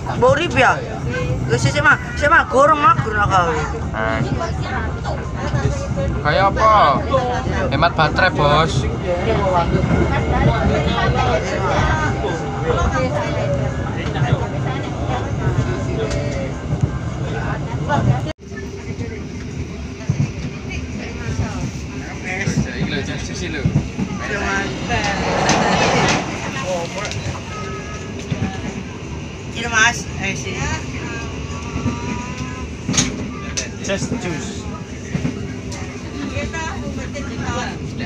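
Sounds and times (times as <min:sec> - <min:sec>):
passengers talking: 0:00.0 - 0:38.0
train rumbling: 0:00.0 - 0:38.0.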